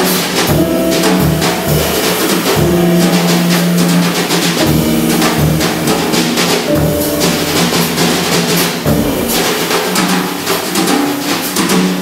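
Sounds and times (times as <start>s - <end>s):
drums and cymbals played with sticks: 0.0s - 12.0s
bass drum: 0.4s - 9.9s.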